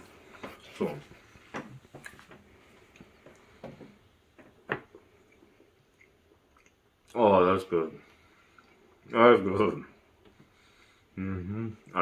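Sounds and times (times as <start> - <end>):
person chewing bread: 0.0 - 7.2, 8.0 - 9.1.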